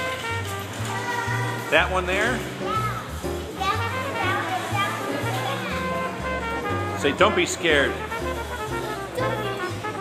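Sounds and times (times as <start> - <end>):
instrumental music with bass line: 0.0 - 10.0.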